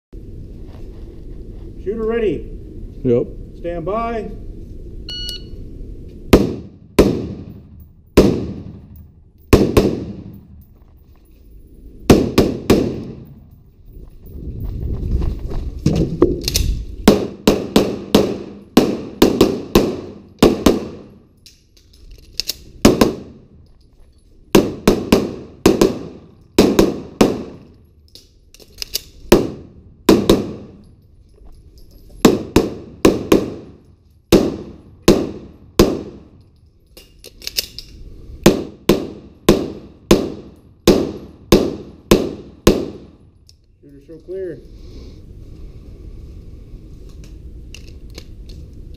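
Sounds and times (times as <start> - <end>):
rifle gunshots echoing: 6.3 - 10.6, 12.1 - 13.4, 17.0 - 21.2, 24.5 - 27.7, 29.2 - 30.8, 32.2 - 36.3, 38.5 - 43.2.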